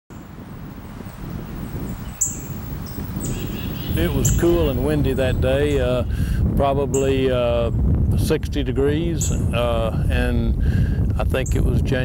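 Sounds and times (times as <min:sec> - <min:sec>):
birds chirping: 0:00.1 - 0:07.7, 0:09.1 - 0:09.8
low outdoor rumble: 0:00.2 - 0:12.0.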